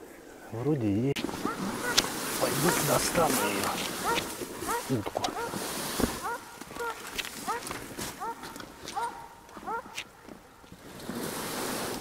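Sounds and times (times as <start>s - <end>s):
dog barking: 3.4s - 5.6s, 6.2s - 10.2s.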